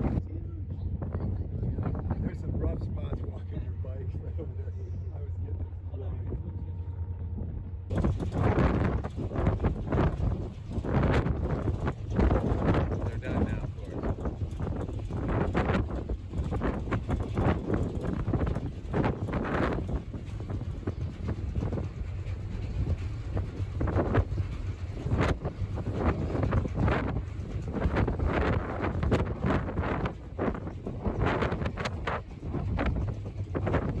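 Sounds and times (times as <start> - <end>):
ferry low rumble: 0.0 - 34.0
wind gusting across microphone: 0.0 - 34.0.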